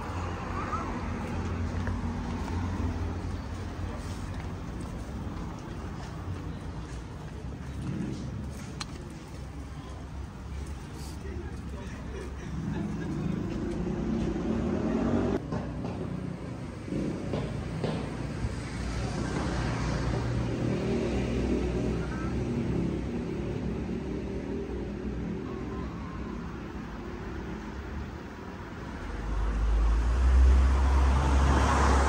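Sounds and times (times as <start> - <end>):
people talking: 0.0 - 1.9, 3.3 - 13.8
motor traffic passing: 0.0 - 32.0.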